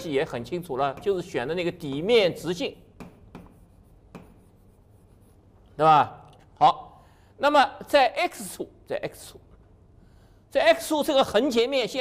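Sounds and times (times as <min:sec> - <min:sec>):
man speaking: 0:00.0 - 0:03.0, 0:05.7 - 0:09.4, 0:10.5 - 0:12.0
chalk stroke on blackboard: 0:03.0 - 0:05.6.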